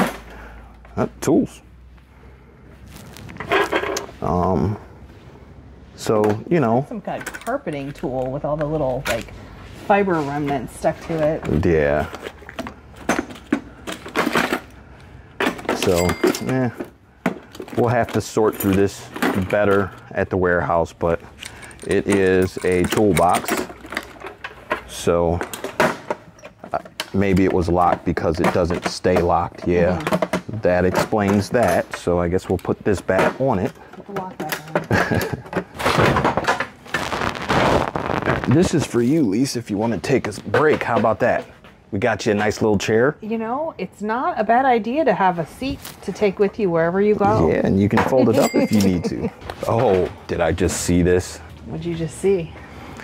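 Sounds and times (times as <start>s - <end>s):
tools clattering in metal toolbox: 15.4s - 16.9s, 21.4s - 26.6s.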